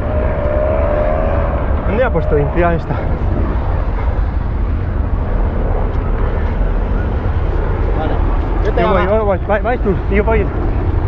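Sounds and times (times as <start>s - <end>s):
car road noise: 0.0s - 11.0s
wind rumble on microphone: 0.0s - 11.0s.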